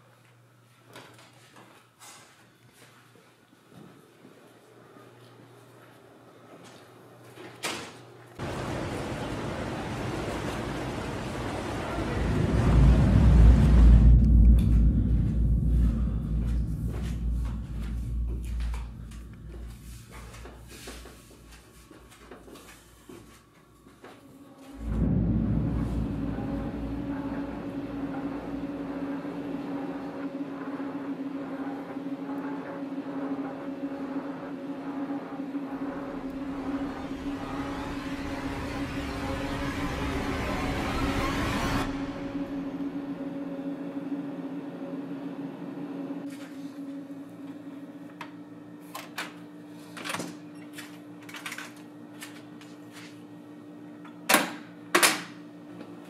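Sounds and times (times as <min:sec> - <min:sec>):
horror drone with hiss: 0:08.4 - 0:21.4, 0:24.6 - 0:31.4, 0:35.7 - 0:46.2
low hum: 0:08.4 - 0:21.7, 0:24.5 - 0:48.6
quiet low tone: 0:12.4 - 0:20.7, 0:24.8 - 0:30.0.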